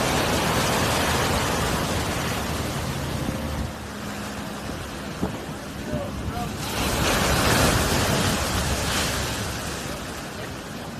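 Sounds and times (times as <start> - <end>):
ocean wave breaking on rocks: 0.0 - 10.9.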